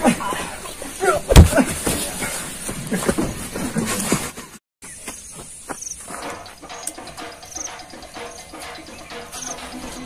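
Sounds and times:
insect chirping: 0:05.2 - 0:10.0.

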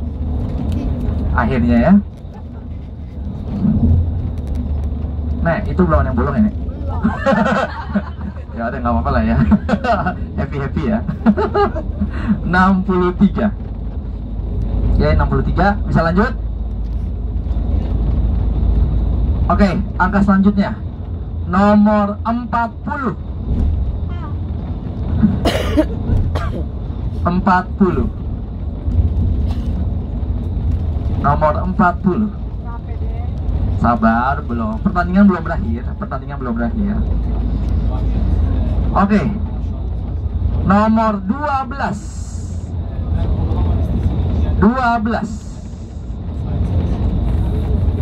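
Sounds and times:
vehicle cabin road rumble: 0:00.0 - 0:48.0.

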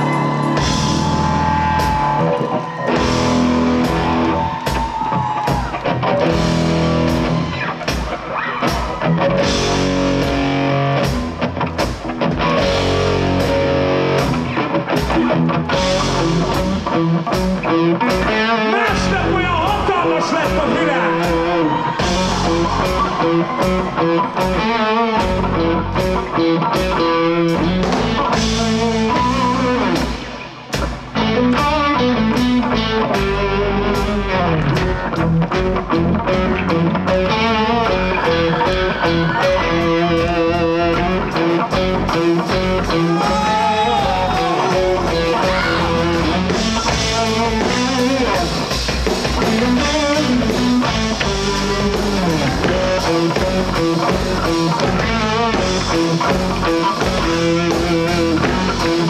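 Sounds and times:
drum kit: 0:00.0 - 0:59.0
electric guitars: 0:00.0 - 0:59.0.

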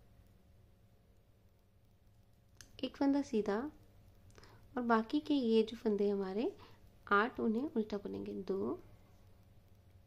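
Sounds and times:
low steady hum: 0:00.0 - 0:10.0
knitting needles clicking: 0:02.1 - 0:03.0
woman speaking: 0:02.7 - 0:03.8, 0:04.8 - 0:08.9.

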